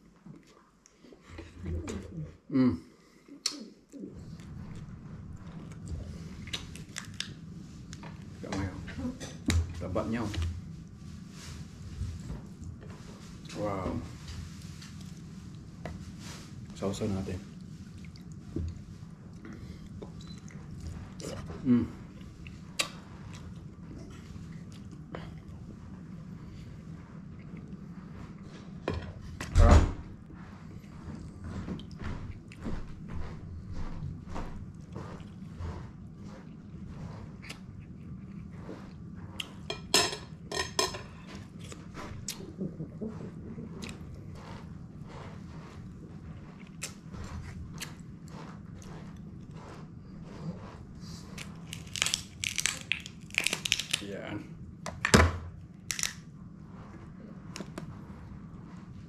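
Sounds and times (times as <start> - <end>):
chewing: 3.3 - 9.4, 17.5 - 28.8, 30.6 - 39.8, 41.0 - 54.1
lobster shell cracking: 51.7 - 54.1, 55.9 - 56.2.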